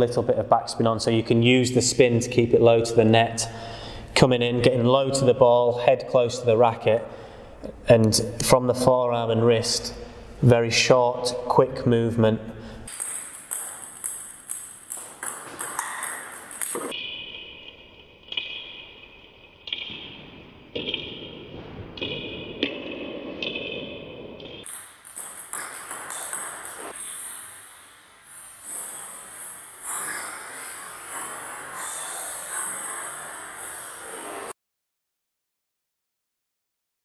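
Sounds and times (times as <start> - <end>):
table tennis ball pinging: 12.9 - 17.7, 19.6 - 27.8.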